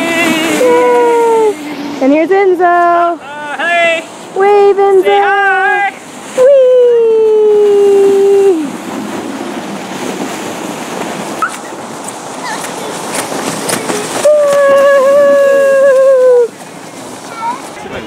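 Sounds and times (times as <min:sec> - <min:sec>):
plastic sled on packed snow: 0:12.4 - 0:18.0.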